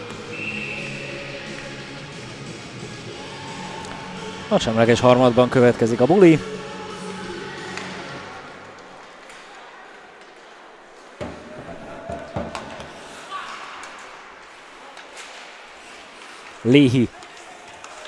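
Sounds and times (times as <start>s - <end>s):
arena crowd hum: 0.0s - 18.0s
hockey sticks clacking on puck: 7.6s - 18.0s.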